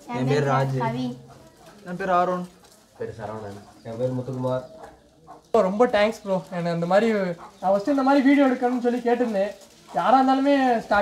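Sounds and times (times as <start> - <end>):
pigeons cooing: 0.0 - 8.6
men talking: 0.0 - 11.0.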